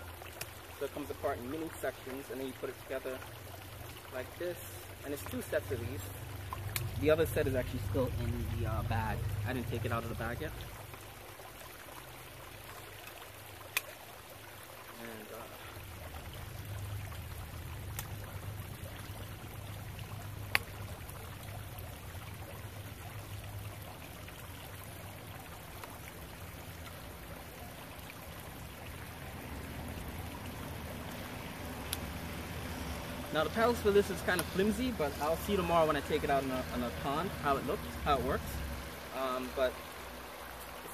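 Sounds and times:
sharp clicks of paddle fitting: 6.5 - 7.0, 13.7 - 14.0.

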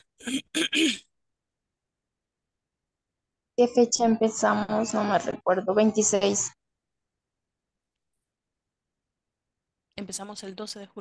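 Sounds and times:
person clearing throat: 0.0 - 1.1.

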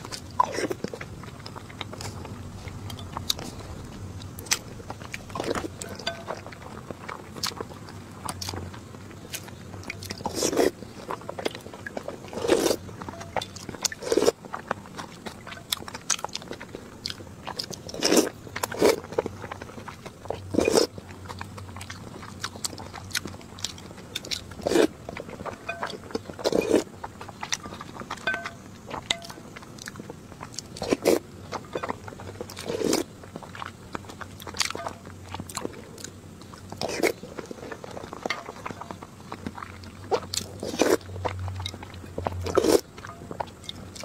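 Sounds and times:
person chewing: 0.0 - 44.0.

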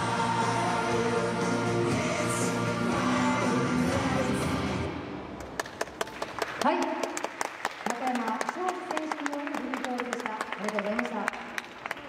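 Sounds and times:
music: 0.0 - 5.4
audience applauding: 5.4 - 12.0.

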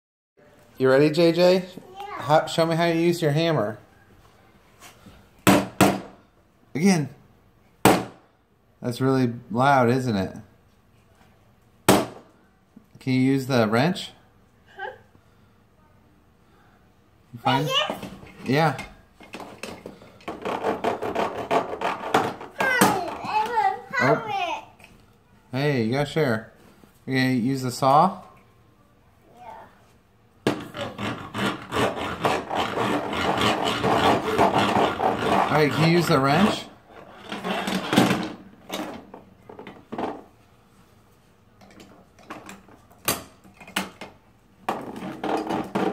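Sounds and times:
toy hammer banging on plastic: 19.6 - 23.3
toy saw rasping on plastic: 30.7 - 37.9.

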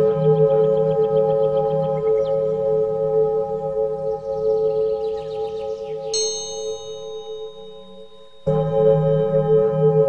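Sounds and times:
meditation music drone: 0.0 - 10.0
high chime ringing: 6.2 - 8.9.

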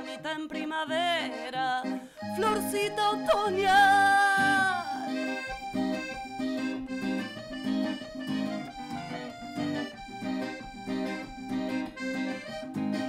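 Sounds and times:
accordion chords: 0.0 - 13.0
acoustic guitar strumming: 0.0 - 13.0.

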